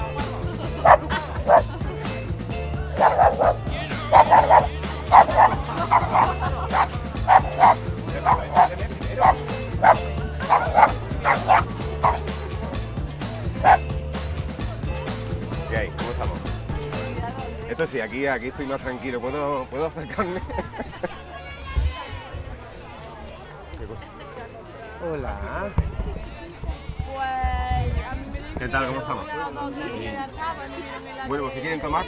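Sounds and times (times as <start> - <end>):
background music: 0.0 - 21.6
small dog yapping: 0.9 - 1.6, 3.0 - 12.2.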